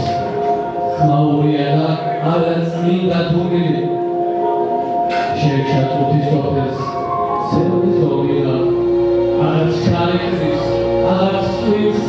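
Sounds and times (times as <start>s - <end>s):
sustained musical tone: 0.0s - 12.0s
man chanting poetry into microphone: 0.9s - 4.0s, 5.1s - 12.0s.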